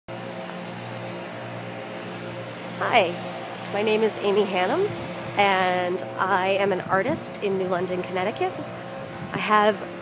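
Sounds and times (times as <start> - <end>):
steady mechanical hum: 0.1 - 10.0.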